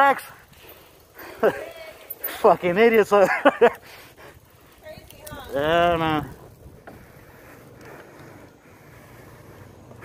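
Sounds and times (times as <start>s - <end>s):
bicycle tyre road noise: 0.0s - 10.0s
wind rushing on microphone: 4.9s - 7.4s.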